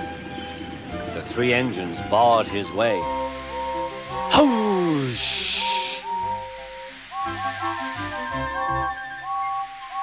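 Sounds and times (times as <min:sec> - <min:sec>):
background music: 0:00.0 - 0:10.0
steam hissing: 0:01.7 - 0:10.0.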